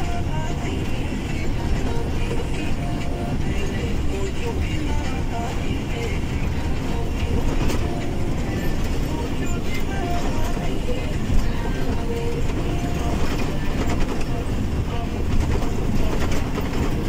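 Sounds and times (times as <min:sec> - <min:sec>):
truck engine and road rumble: 0:00.0 - 0:17.0.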